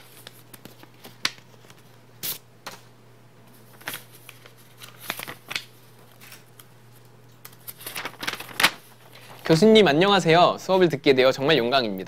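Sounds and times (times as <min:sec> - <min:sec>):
paper rustling and snapping: 0:03.7 - 0:06.7, 0:07.4 - 0:09.4.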